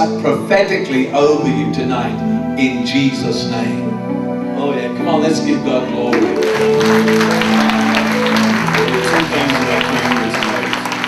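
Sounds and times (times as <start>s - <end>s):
band playing sustained chords: 0.0s - 11.0s
congregation applauding: 6.1s - 11.0s.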